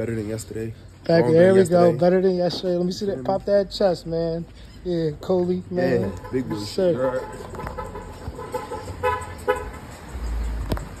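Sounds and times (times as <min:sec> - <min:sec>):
car horn toots: 0:06.0 - 0:09.8.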